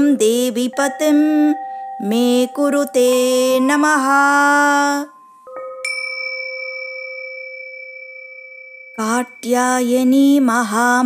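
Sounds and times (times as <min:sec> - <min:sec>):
bell ringing: 0:00.7 - 0:11.0.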